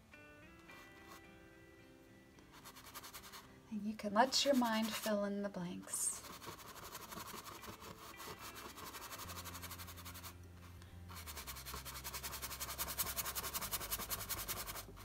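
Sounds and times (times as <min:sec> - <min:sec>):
brush scrubbing canvas: 0:02.6 - 0:03.4, 0:04.2 - 0:05.2, 0:06.1 - 0:10.4, 0:11.1 - 0:15.0.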